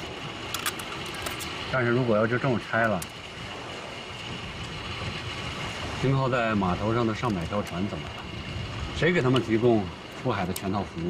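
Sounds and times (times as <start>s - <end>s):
rumbling hiss: 0.0s - 11.0s.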